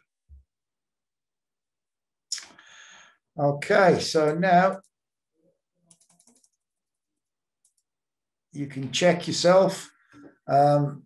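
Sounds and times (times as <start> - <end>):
keyboard keystrokes: 5.9 - 6.6.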